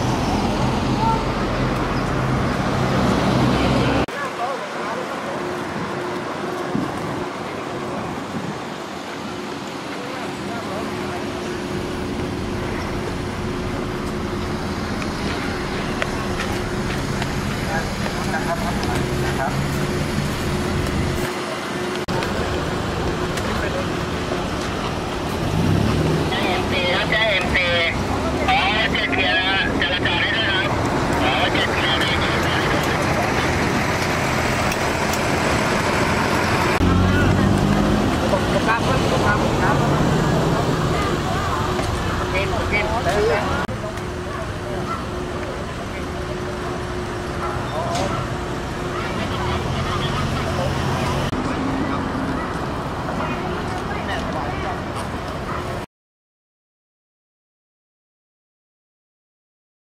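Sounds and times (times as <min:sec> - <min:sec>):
vehicle engines passing: 0:00.0 - 0:55.8.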